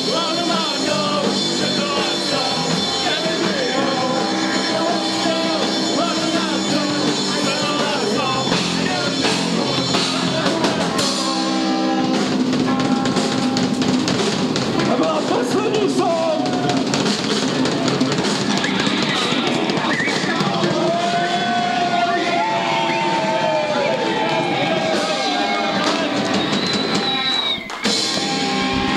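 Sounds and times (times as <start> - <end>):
drum kit hits: 0.0 - 28.9
pop-punk band playing live: 0.0 - 28.9.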